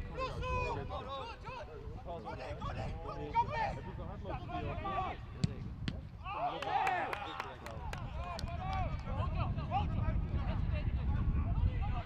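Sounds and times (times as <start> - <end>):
ball being kicked: 5.4 - 6.1.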